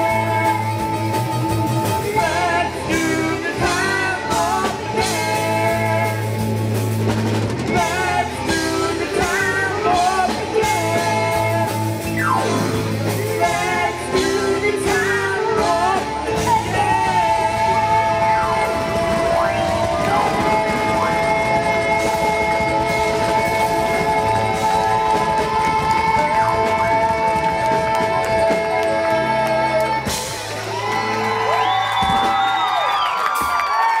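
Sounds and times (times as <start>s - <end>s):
held keyboard notes: 0.0s - 30.4s
live rock band playing: 0.0s - 34.0s.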